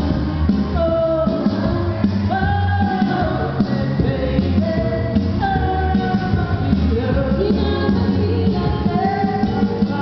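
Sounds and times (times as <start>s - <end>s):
karaoke backing track: 0.0s - 10.0s
woman singing into a microphone: 0.0s - 10.0s.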